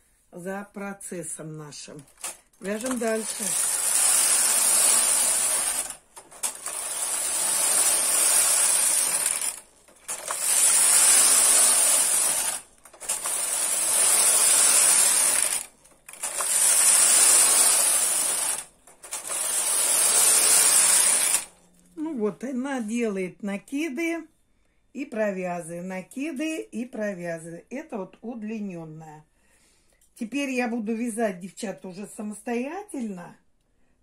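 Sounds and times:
knitting machine carriage running: 2.0 - 21.6.

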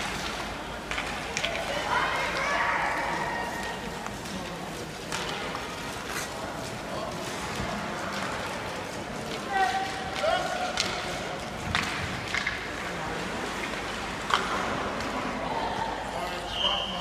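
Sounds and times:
sticks and puck clacking on ice: 0.0 - 12.8.

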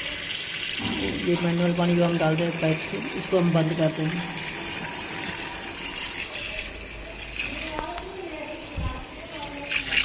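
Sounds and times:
water pouring into washing machine: 0.0 - 10.0.

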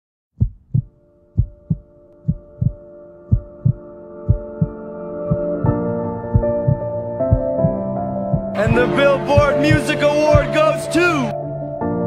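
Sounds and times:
heartbeat thumps: 0.4 - 5.7, 6.3 - 8.8, 9.4 - 10.5
sustained chord: 1.0 - 12.0.

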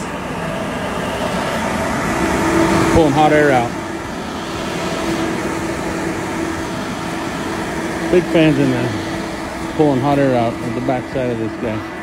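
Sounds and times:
exhaust fans blowing air: 0.0 - 12.0.

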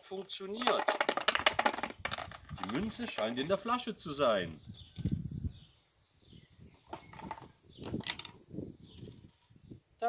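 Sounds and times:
plastic bottle being handled: 0.2 - 3.5, 6.7 - 8.4.

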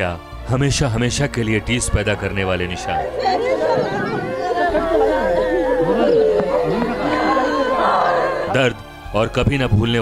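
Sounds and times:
women crying and wailing: 2.6 - 8.6
long high-pitched wail: 3.0 - 8.5.

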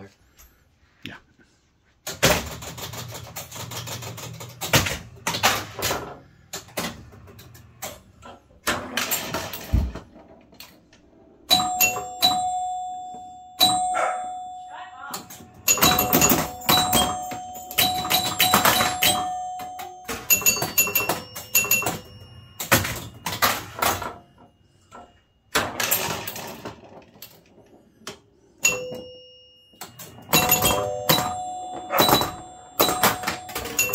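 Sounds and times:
pinball machine clacking: 2.0 - 33.9
pinball scoring chimes ringing: 2.1 - 33.9.

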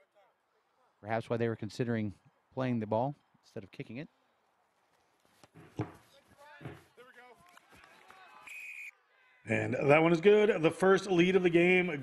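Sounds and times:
ball kick thump: 5.5 - 6.0, 6.6 - 6.9
short high whistle: 8.5 - 9.0.

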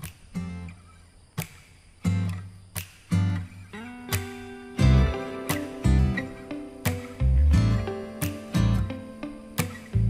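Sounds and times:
acoustic guitar chords: 2.0 - 2.5, 3.1 - 10.0
low bass: 4.8 - 5.3, 5.9 - 6.4, 7.2 - 8.0, 8.6 - 8.9.

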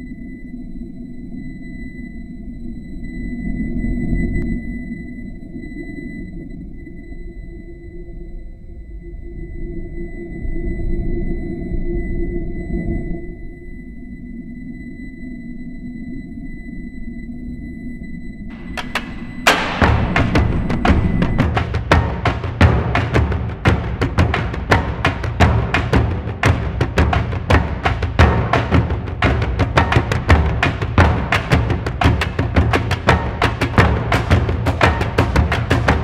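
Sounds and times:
sharp drum hits: 18.5 - 36.0.

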